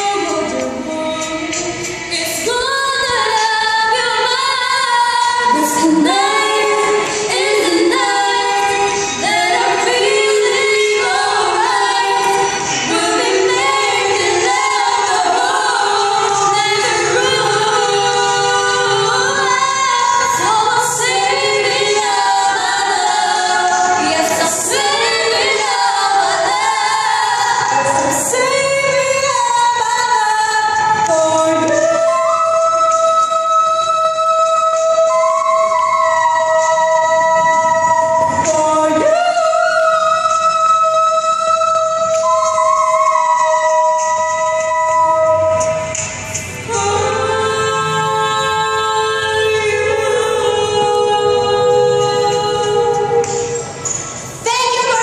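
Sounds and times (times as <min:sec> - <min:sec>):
women singing a duet: 0:00.0 - 0:55.0.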